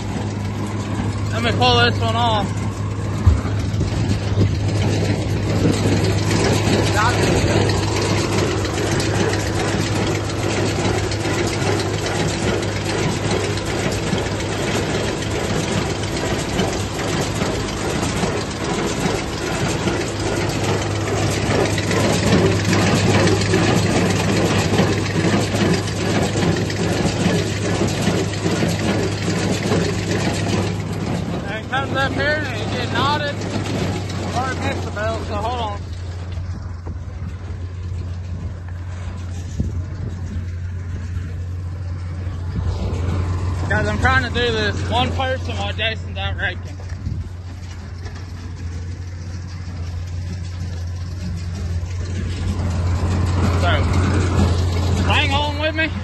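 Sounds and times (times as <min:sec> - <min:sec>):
hay baler running: 0:00.0 - 0:56.0
tractor engine running: 0:00.0 - 0:56.0.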